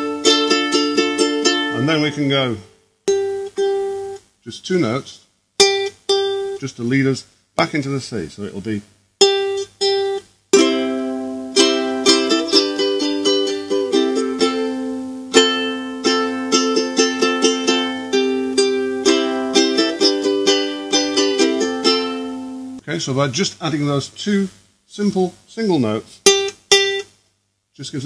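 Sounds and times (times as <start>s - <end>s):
ukulele plucked notes: 0.0s - 4.2s, 5.6s - 6.6s, 9.2s - 22.8s, 26.2s - 27.1s
ukulele strummed chords: 0.0s - 4.8s, 5.6s - 7.0s, 9.2s - 22.8s, 26.2s - 27.1s.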